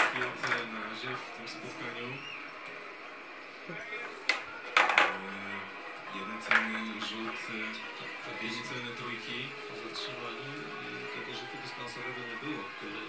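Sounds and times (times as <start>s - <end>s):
toy pool balls clacking: 4.2s - 5.2s, 6.4s - 7.4s.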